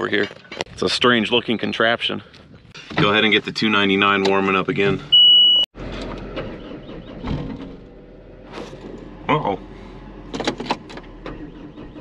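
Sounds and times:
high electronic beep: 5.1s - 5.7s
diesel engine running: 5.8s - 12.0s.

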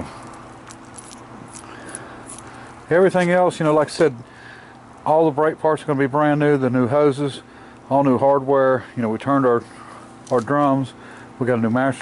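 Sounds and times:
metal bearings clinking: 0.7s - 2.5s.

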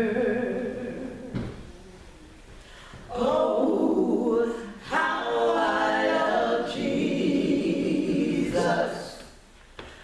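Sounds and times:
voices singing a hymn in harmony: 0.0s - 1.5s, 3.0s - 9.4s.

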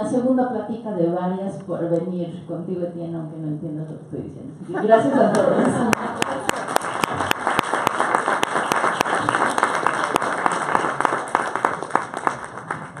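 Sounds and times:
audience applauding: 5.3s - 13.0s
sharp nearby claps: 5.3s - 13.0s.

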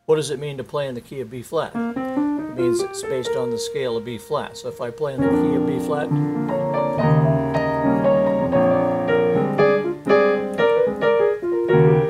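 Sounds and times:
piano chords and melody: 1.8s - 12.0s.

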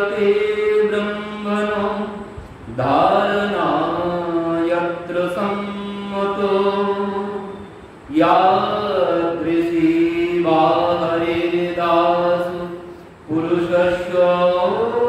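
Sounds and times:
man chanting into a microphone: 0.0s - 15.0s
breath: 12.9s - 13.2s.

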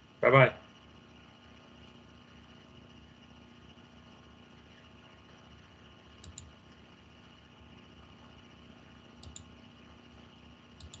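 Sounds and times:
low steady hum: 0.0s - 11.0s
computer mouse clicking: 6.2s - 6.6s, 9.2s - 9.5s, 10.8s - 11.0s.

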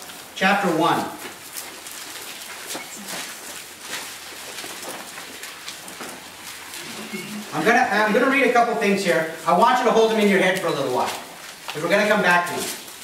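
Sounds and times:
pages turning and rustling: 1.2s - 7.1s, 10.1s - 13.0s
room hiss: 2.6s - 13.0s.

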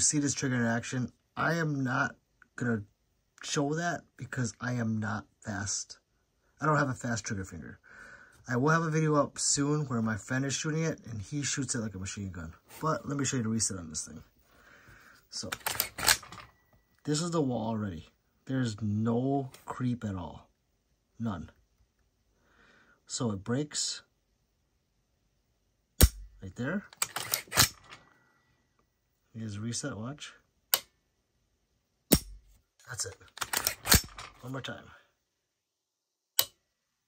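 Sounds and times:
rifle action metallic clicks: 15.4s - 16.5s, 26.9s - 28.0s, 33.3s - 34.4s
sharp metallic trigger click: 26.0s - 26.3s, 32.1s - 32.4s, 33.4s - 34.3s, 36.4s - 36.6s.

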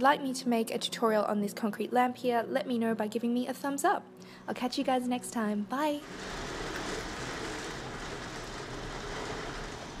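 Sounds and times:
steady rain falling: 6.0s - 10.0s.

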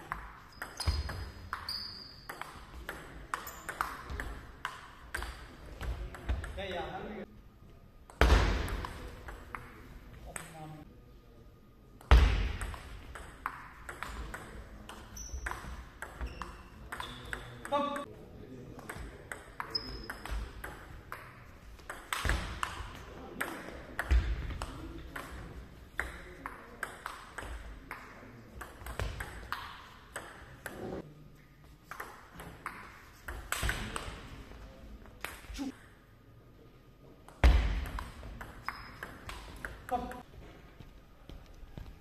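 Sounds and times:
ball bouncing on table: 0.1s - 6.6s, 12.0s - 18.1s, 18.8s - 25.4s, 26.0s - 31.0s, 31.9s - 34.2s
ping pong ball clicking off bats: 0.1s - 6.6s, 12.0s - 18.1s, 18.8s - 30.8s, 37.3s - 40.3s.

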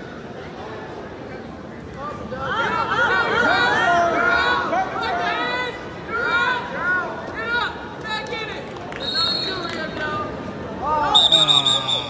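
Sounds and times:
referee's whistle blasts: 11.1s - 12.0s.

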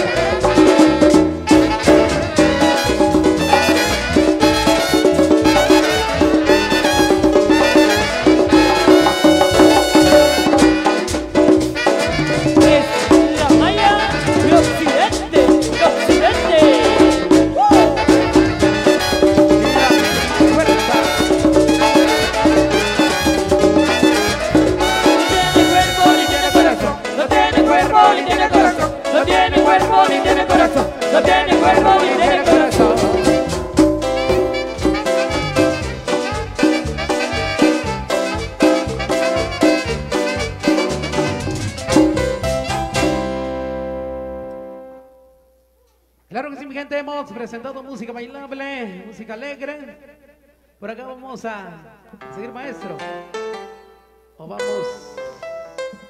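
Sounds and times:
conga drums: 0.0s - 44.2s
marimba: 0.0s - 44.7s
horns: 0.0s - 45.1s.

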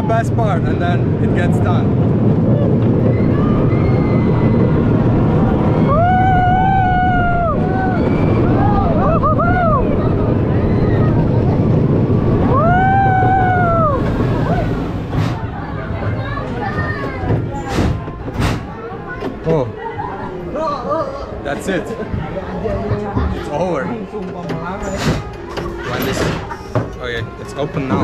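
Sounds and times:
roller coaster rumbling on track: 0.0s - 28.0s.

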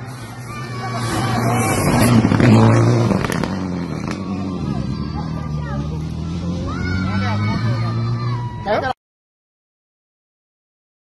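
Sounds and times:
rally car engine drone: 0.0s - 9.0s.

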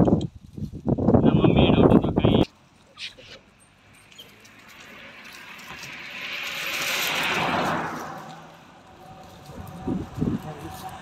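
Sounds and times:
vehicle passing by: 3.5s - 11.0s.

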